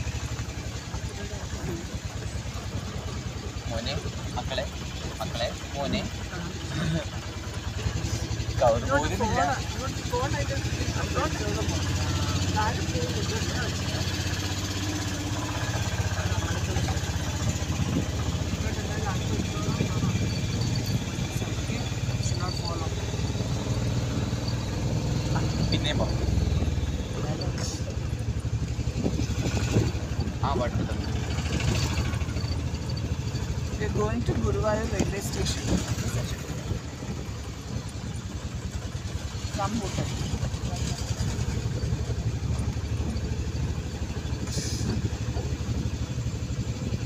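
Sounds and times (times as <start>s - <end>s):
street noise: 0.0s - 47.0s
vehicle engine droning: 0.0s - 47.0s.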